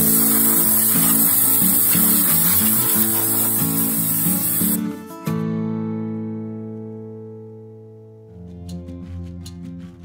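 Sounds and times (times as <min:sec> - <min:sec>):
acoustic guitar chord ringing: 0:00.0 - 0:07.6.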